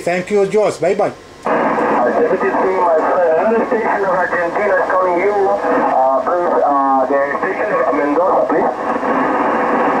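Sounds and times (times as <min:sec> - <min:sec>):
voice over radio transceiver: 0:01.8 - 0:09.0.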